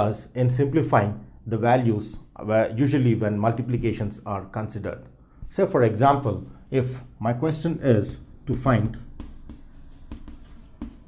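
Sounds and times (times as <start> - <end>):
chalk scratching on chalkboard: 6.9 - 11.0
chalk tapping on chalkboard: 7.4 - 11.0.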